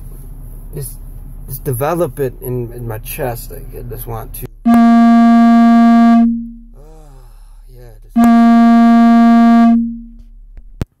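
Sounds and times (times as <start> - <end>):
loud held electronic notes: 4.7 - 6.8, 8.2 - 10.3.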